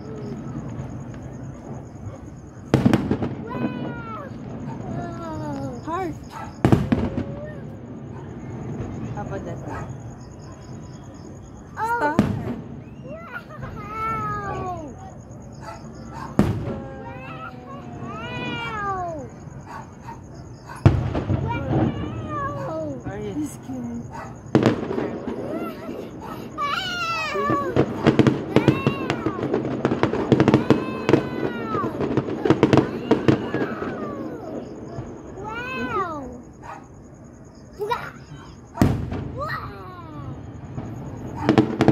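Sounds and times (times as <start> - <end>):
distant fireworks bangs: 0.0 - 41.9
fireworks crackling: 0.0 - 41.9
rising and falling cries: 24.8 - 36.5.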